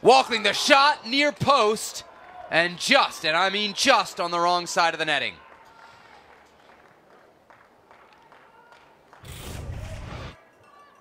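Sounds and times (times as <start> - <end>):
faint stadium ambience: 0.0 - 11.0
loud whoosh sound effect: 9.2 - 10.4.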